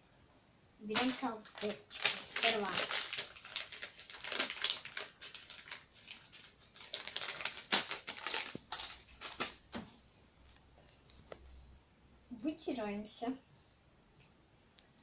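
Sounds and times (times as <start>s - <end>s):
diaper rustling: 0.9s - 9.8s
wipe packet crinkling: 0.9s - 9.8s.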